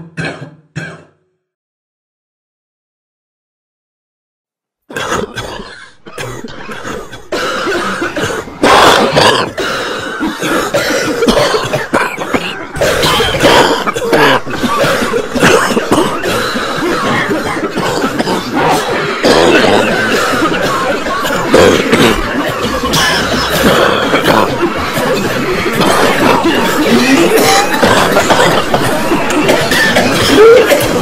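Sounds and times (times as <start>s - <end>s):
person coughing: 4.9s - 31.0s.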